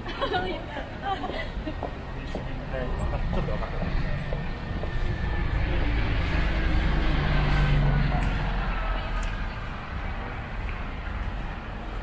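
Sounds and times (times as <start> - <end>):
bus driving past: 0.0 - 12.0
low engine hum: 2.1 - 12.0.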